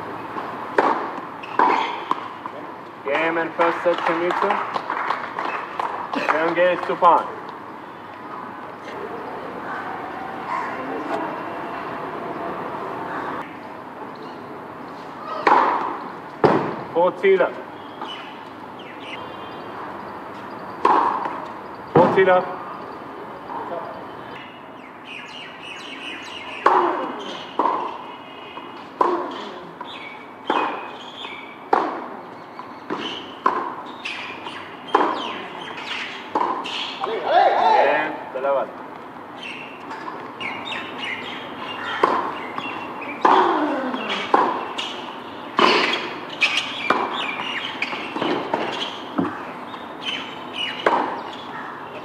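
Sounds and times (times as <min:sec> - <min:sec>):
birds chirping: 0:00.0 - 0:16.4, 0:17.0 - 0:52.0
racquets hitting tennis ball: 0:00.3 - 0:09.1, 0:15.4 - 0:17.3, 0:20.8 - 0:22.5, 0:26.5 - 0:37.7, 0:38.6 - 0:51.5
tennis ball bouncing: 0:00.3 - 0:09.2, 0:15.4 - 0:16.8, 0:20.8 - 0:22.3, 0:26.6 - 0:28.0, 0:28.6 - 0:37.2, 0:39.5 - 0:51.5.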